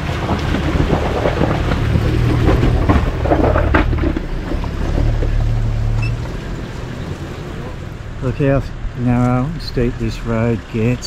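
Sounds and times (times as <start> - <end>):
rocks crunching under tyres: 0.0 - 11.0
vehicle engine under load: 0.0 - 11.0.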